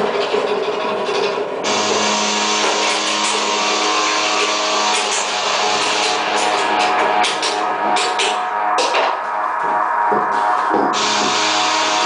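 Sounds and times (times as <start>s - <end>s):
electronic noise music: 1.6s - 12.0s.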